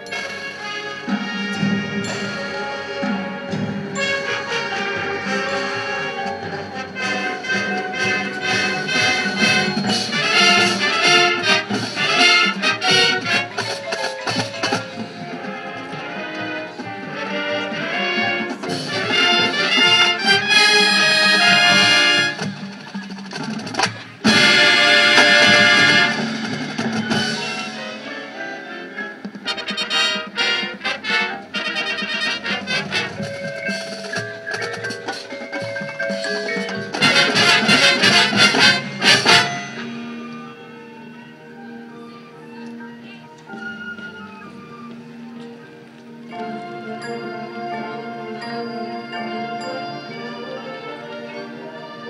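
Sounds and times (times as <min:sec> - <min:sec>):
brass chords: 0:00.0 - 0:22.8, 0:24.2 - 0:41.0
drums and percussion: 0:00.0 - 0:42.2, 0:43.0 - 0:52.0
marching band playing: 0:00.0 - 0:52.0.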